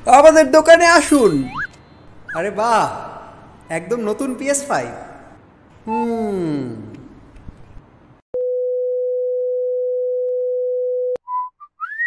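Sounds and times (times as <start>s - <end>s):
electronic beep: 1.2s - 2.4s
short whistled notes: 11.3s - 12.0s.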